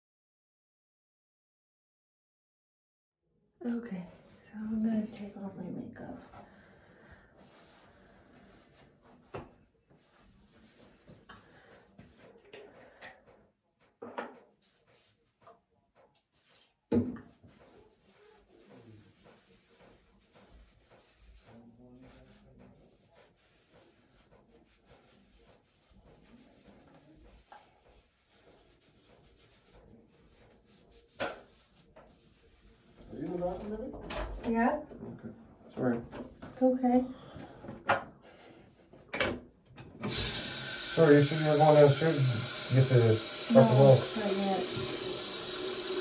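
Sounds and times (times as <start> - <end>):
wipe rubbing over face: 4.0 - 33.8.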